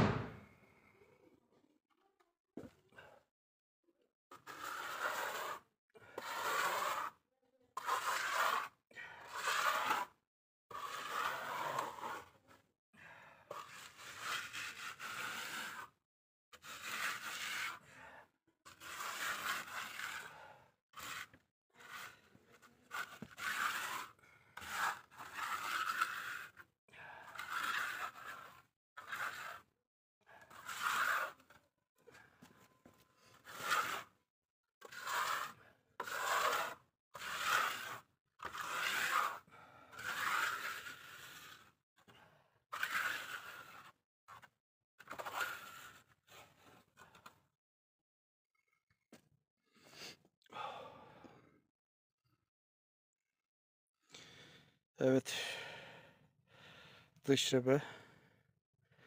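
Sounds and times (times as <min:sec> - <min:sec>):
trowel scraping plaster on wall: 0:00.0 - 0:00.4, 0:04.3 - 0:12.6, 0:13.2 - 0:34.2, 0:34.8 - 0:47.4.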